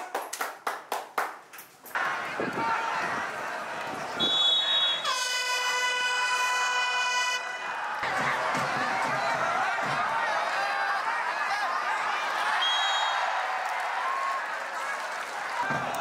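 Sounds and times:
hand claps: 0:00.0 - 0:01.7
stadium crowd noise: 0:00.0 - 0:16.0
horn blast: 0:04.2 - 0:08.0.

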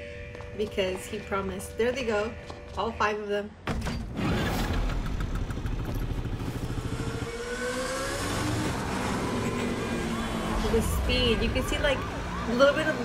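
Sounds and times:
moped engine revving: 0:04.1 - 0:11.6.

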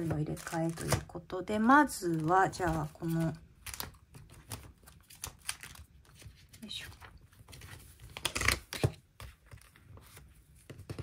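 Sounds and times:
paper pages rustling: 0:01.9 - 0:11.0.

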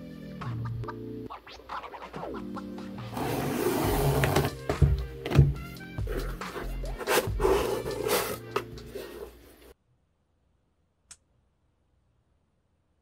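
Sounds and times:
music with beat and melody: 0:00.0 - 0:09.1.

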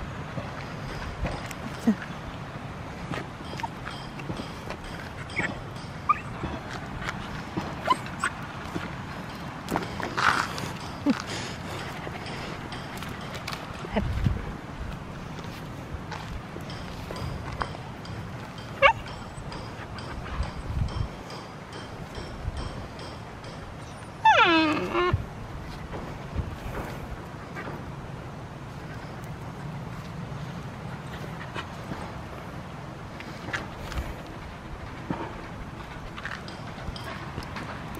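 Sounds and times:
footsteps walking: 0:03.0 - 0:19.0
dog yipping: 0:05.3 - 0:06.5, 0:07.8 - 0:08.4, 0:18.8 - 0:19.4, 0:24.2 - 0:25.2.

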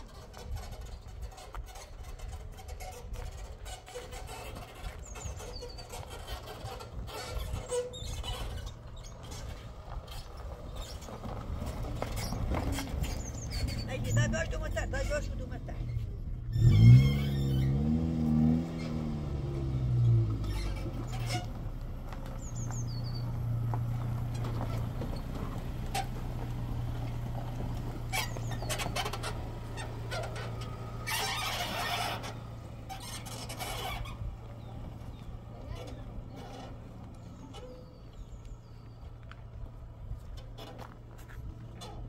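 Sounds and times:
truck engine starting and running: 0:00.0 - 0:42.0.

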